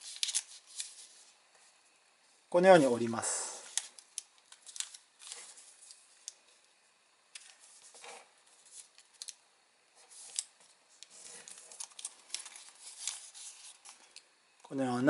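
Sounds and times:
paper rustling: 0.0s - 1.4s, 3.6s - 6.4s, 7.4s - 9.4s, 10.0s - 14.2s
crisp paper creasing ticks: 3.7s - 6.4s, 10.2s - 14.2s.

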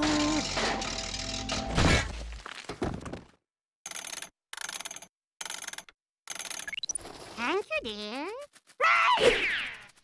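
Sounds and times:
cartoon ratchet clicking: 3.8s - 6.9s.

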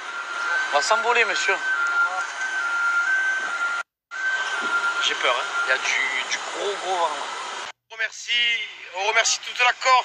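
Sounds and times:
jet engine whine: 0.0s - 7.8s.

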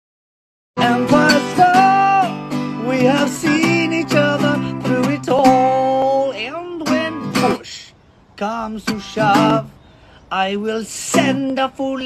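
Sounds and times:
acoustic guitar strumming: 0.8s - 12.0s
man singing: 0.8s - 12.0s.

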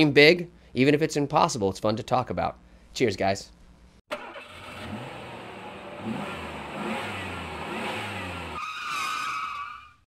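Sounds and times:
high-pitched tyre skidding squeal: 8.1s - 10.0s.

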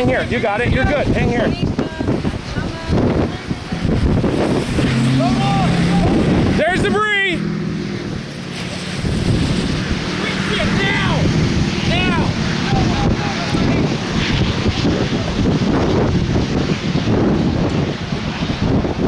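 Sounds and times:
strong wind buffeting microphone: 0.0s - 19.0s
people shouting: 5.0s - 7.4s, 10.2s - 13.8s.

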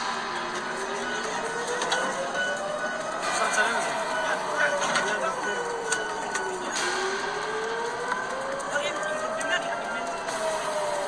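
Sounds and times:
air-raid siren wailing: 0.0s - 11.0s.

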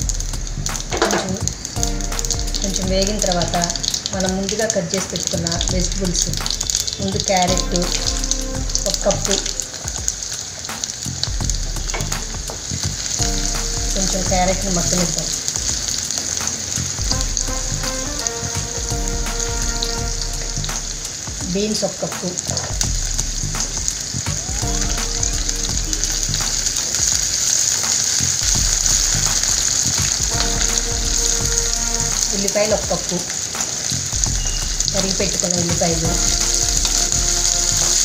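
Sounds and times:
vegetables sizzling in hot oil: 0.0s - 38.0s.

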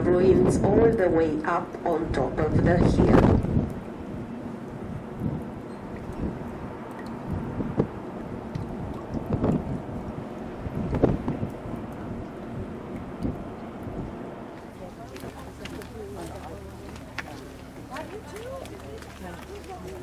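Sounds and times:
wind buffeting microphone: 0.0s - 20.0s
faint voices: 14.6s - 20.0s.

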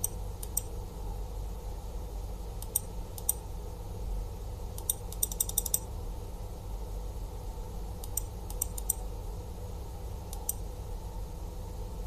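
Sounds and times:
computer mouse clicks: 0.0s - 0.7s, 2.6s - 3.4s, 4.8s - 5.9s, 8.0s - 9.0s, 10.3s - 10.6s
steady low hum: 0.0s - 12.0s.

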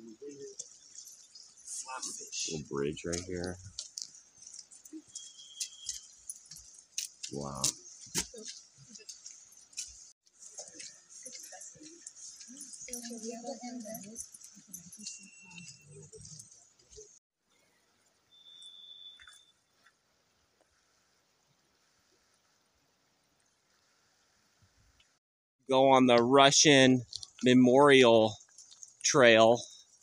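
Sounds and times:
soft voices of people: 1.7s - 3.6s, 7.4s - 9.1s.

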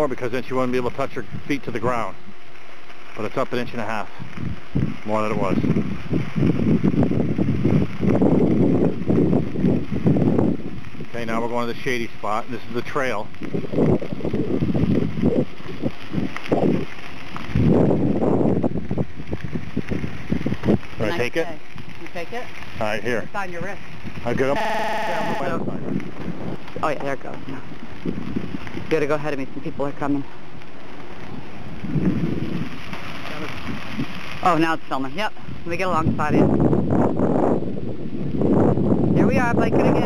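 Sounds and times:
tyres rolling on gravel: 0.0s - 40.0s
wind buffeting microphone: 0.0s - 40.0s.

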